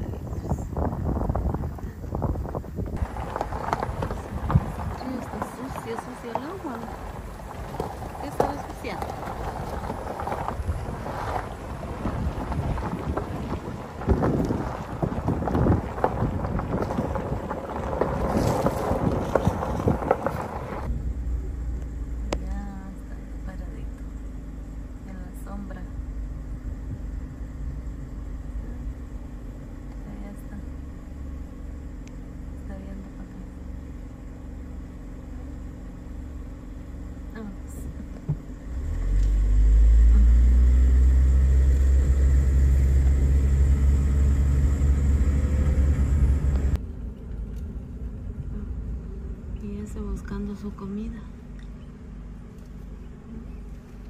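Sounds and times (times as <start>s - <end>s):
wind buffeting microphone: 0.0s - 22.4s, 25.8s - 30.9s
vehicle engine rumbling: 0.0s - 54.0s.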